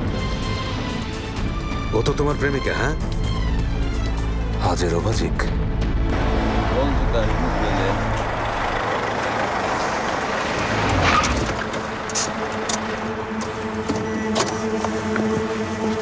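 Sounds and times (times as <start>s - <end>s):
pickup truck driving and stopping: 5.4s - 16.0s.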